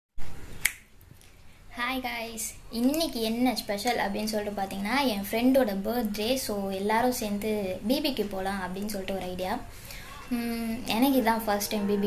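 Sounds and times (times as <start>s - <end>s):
sharp click: 0.6s - 0.9s
woman speaking: 1.8s - 12.0s.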